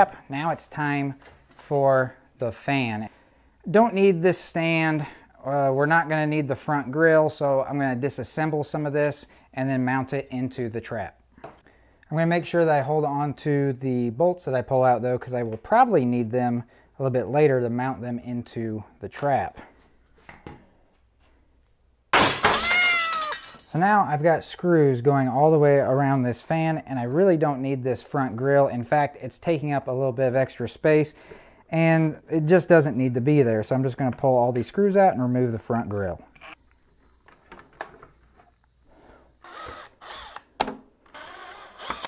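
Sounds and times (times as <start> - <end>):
cordless drill drilling into plastic: 39.4 - 42.0.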